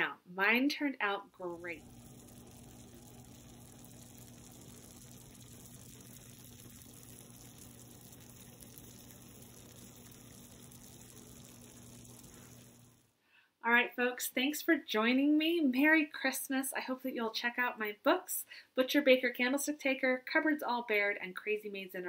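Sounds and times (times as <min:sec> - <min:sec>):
faint background hiss: 0:00.0 - 0:22.0
low electrical hum: 0:01.0 - 0:13.2.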